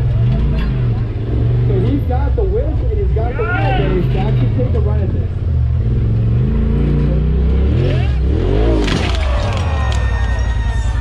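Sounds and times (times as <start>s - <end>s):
vehicle engine revving under load: 0.0s - 10.1s
spectators' voices: 6.8s - 11.0s.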